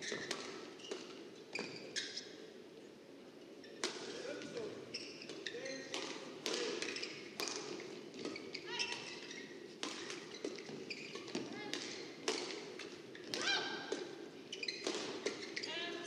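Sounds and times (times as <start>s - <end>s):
shoes squeaking on court floor: 0.0s - 2.4s, 3.6s - 6.2s, 6.8s - 13.4s, 14.0s - 16.0s.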